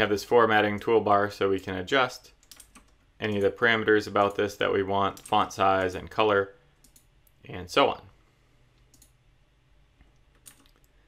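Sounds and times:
mouse click: 8.8s - 9.2s.

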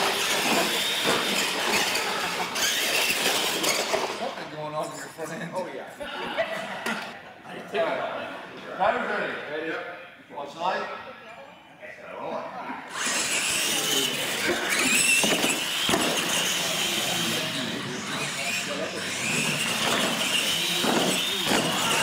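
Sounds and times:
toy truck motor whine: 0.0s - 4.3s, 12.9s - 22.0s.

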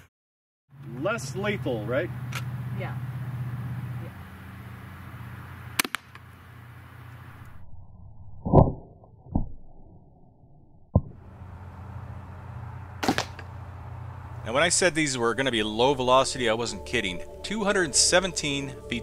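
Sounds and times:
shotgun shot: 13.0s - 13.5s.

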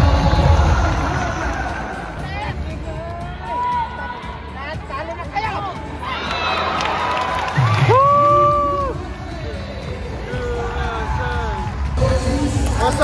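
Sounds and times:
crowd noise in arena: 0.0s - 13.0s
music over loudspeakers: 0.0s - 13.0s.

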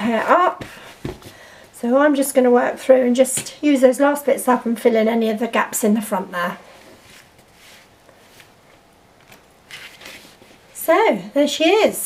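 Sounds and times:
cloth doll rustling: 6.6s - 10.8s.

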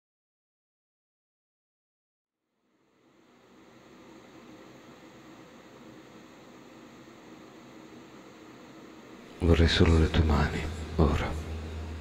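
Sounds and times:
steady low hiss: 2.6s - 12.0s.

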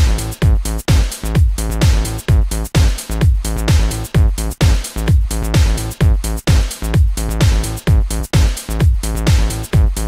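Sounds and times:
electro dance music: 0.0s - 10.0s
punchy kick drum: 0.0s - 10.0s.

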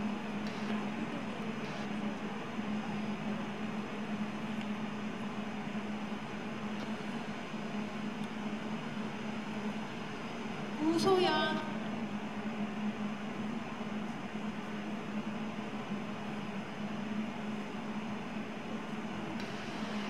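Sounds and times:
steady hiss: 0.0s - 20.0s.

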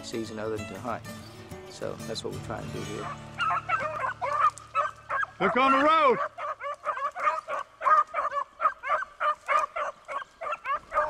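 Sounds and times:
dogs barking in short high calls: 3.0s - 11.0s.

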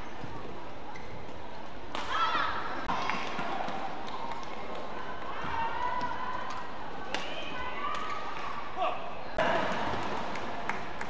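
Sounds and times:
shoes squeaking on court: 0.0s - 1.8s.

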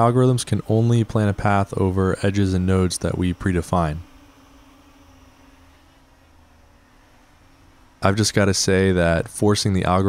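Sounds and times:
distant quadcopter propellers humming: 0.0s - 10.0s.

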